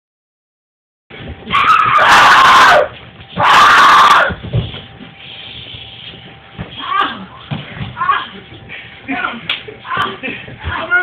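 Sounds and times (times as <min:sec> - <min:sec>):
person screaming: 0:03.4 - 0:04.3.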